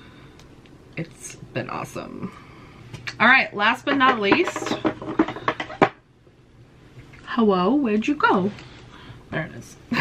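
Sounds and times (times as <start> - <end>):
small items clicking and knocking: 3.7 - 6.0.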